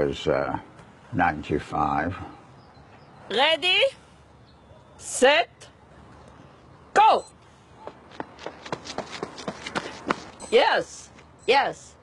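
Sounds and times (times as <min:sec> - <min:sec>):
running footsteps on a track: 0:07.8 - 0:10.4.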